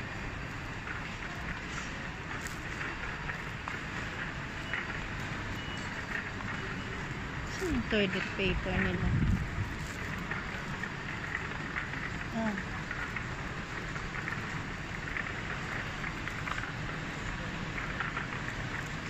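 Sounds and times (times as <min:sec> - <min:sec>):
supermarket background hiss: 0:00.0 - 0:19.0.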